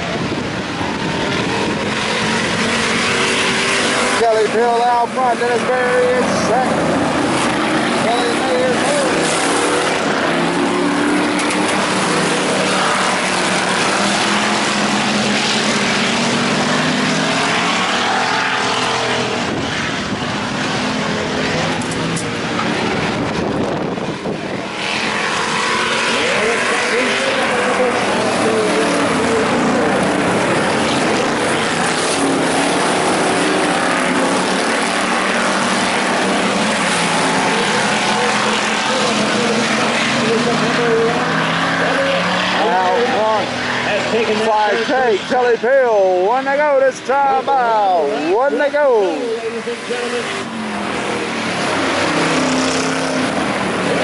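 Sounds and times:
race car engines running hard: 0.0 - 54.0.

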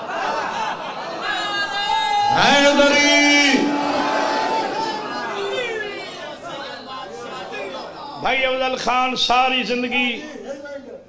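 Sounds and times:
several voices talking: 1.1 - 10.9.

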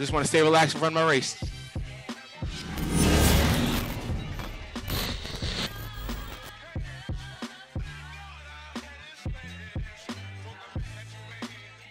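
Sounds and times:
low impact hit: 2.5 - 6.7
whoosh: 2.5 - 6.7.

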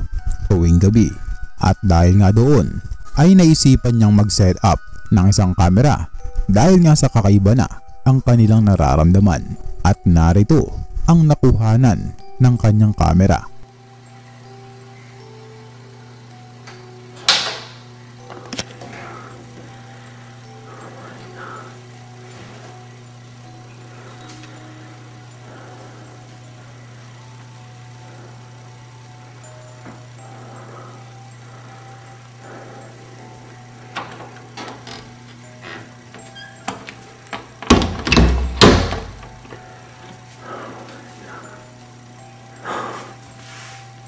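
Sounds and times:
steady low hum: 0.0 - 44.0
door handling clicks and knocks: 17.2 - 17.8, 33.9 - 39.5.

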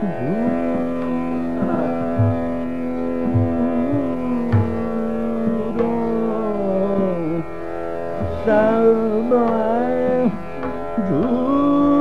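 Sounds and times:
steady drone: 0.0 - 12.0
tabla strokes: 0.0 - 12.0.

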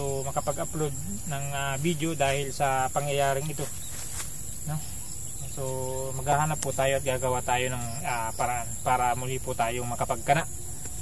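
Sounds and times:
insects chirring trill: 0.0 - 11.0.

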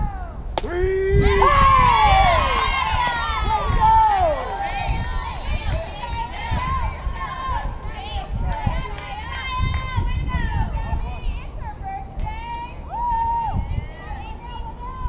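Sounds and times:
low uneven rumble: 0.0 - 15.0
girls shouting: 1.2 - 10.6.

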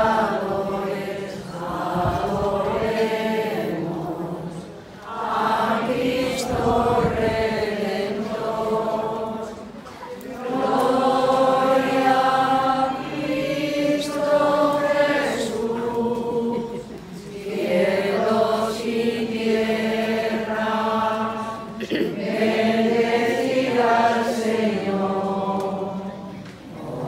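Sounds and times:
crowd singing a hymn: 0.0 - 27.0.

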